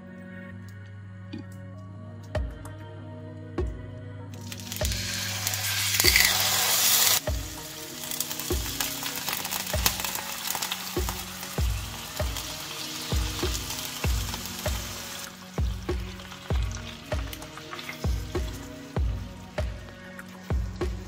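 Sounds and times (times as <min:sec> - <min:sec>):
background music beat: 0:00.0 - 0:21.0
meat sizzling in hot oil: 0:04.4 - 0:21.0.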